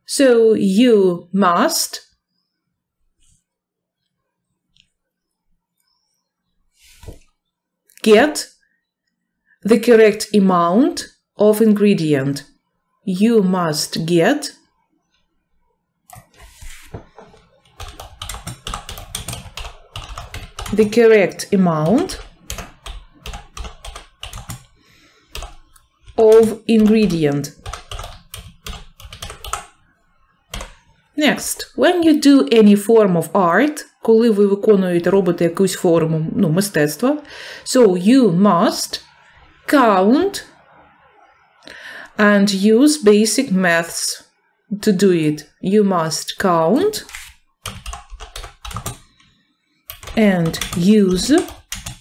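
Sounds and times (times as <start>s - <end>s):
keyboard typing clicks: 17.7s - 21.0s, 21.8s - 24.7s, 25.3s - 29.8s, 47.0s - 49.3s, 49.9s - 52.0s.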